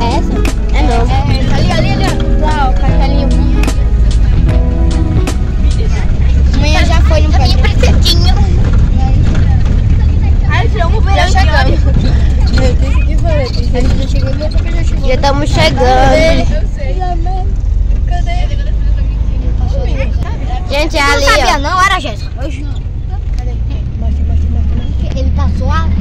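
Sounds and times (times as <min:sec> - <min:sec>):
music playing: 0:00.0 - 0:08.8
passengers chattering: 0:00.0 - 0:26.0
road noise: 0:00.0 - 0:26.0
van engine rumble: 0:00.0 - 0:26.0.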